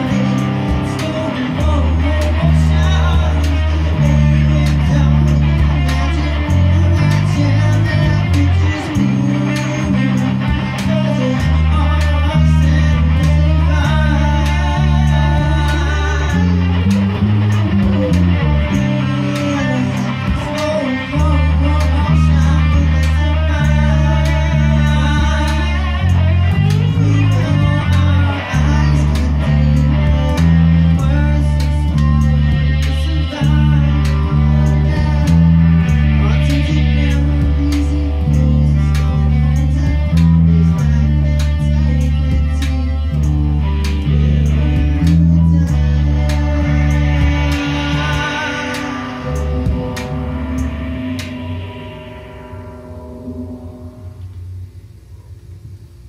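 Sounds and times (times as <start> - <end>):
rock song final chord: 0.0 - 55.8
bass line: 0.0 - 56.0
electric guitar: 0.0 - 56.0.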